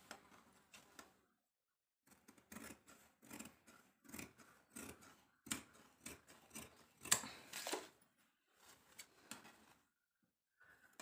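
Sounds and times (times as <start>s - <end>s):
scissors snipping cloth: 2.1s - 7.8s.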